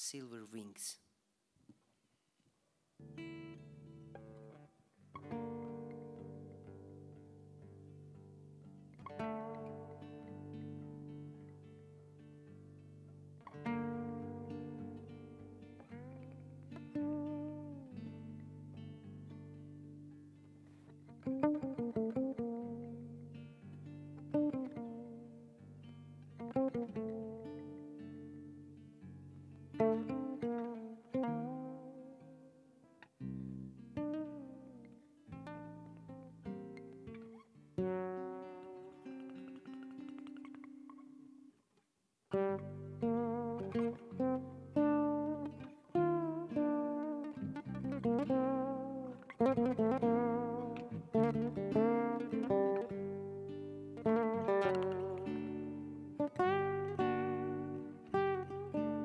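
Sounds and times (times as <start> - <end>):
acoustic guitar duet: 3.0 - 59.0.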